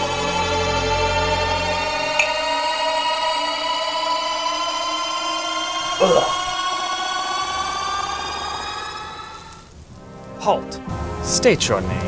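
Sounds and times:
falling electronic sweep: 0:00.0 - 0:09.7
rising electronic tone: 0:01.2 - 0:09.7.

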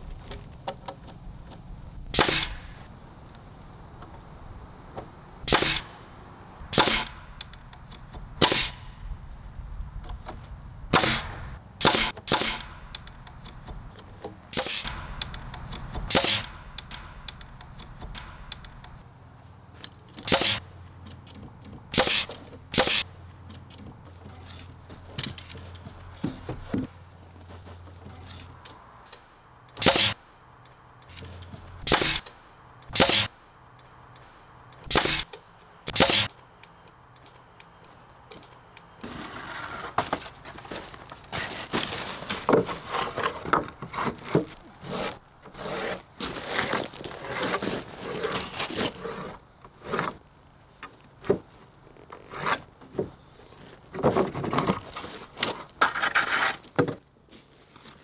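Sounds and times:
nail gun shots: 0:02.1 - 0:02.8, 0:05.4 - 0:05.9, 0:06.7 - 0:07.4, 0:08.4 - 0:08.9, 0:10.9 - 0:13.0, 0:14.5 - 0:17.4, 0:20.2 - 0:20.6, 0:21.9 - 0:23.0, 0:29.8 - 0:30.2, 0:31.8 - 0:32.3, 0:32.9 - 0:33.4, 0:34.8 - 0:35.3, 0:35.9 - 0:36.4
boards scraping and knocking: 0:23.6 - 0:28.6, 0:39.0 - 0:58.0.

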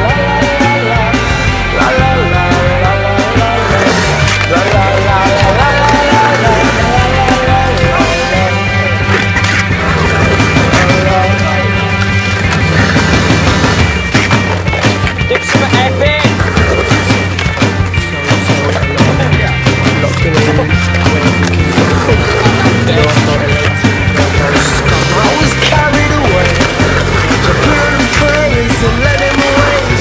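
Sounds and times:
music with bass line: 0:00.0 - 0:30.0
skateboard rolling on concrete: 0:00.0 - 0:30.0
skateboard clacking on ground: 0:03.7 - 0:12.9, 0:13.8 - 0:30.0.

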